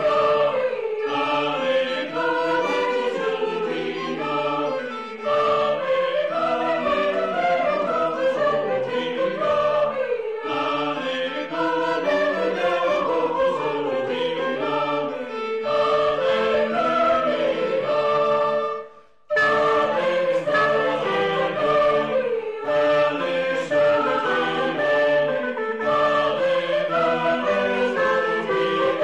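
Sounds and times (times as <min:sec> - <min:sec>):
choir singing: 0:00.0 - 0:29.0.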